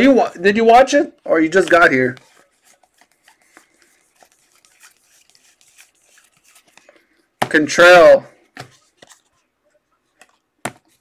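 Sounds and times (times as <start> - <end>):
cards being shuffled by hand: 1.4 - 7.7.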